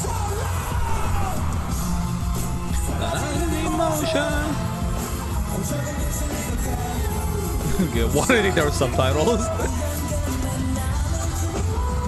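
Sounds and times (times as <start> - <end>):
heavy bass: 0.0 - 10.2
person singing: 0.0 - 12.0.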